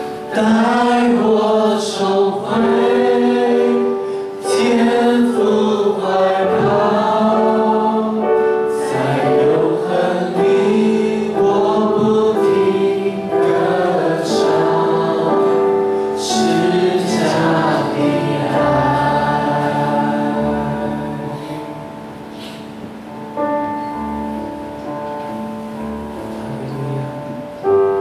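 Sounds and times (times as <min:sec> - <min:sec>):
congregation singing worship song: 0:00.0 - 0:28.0.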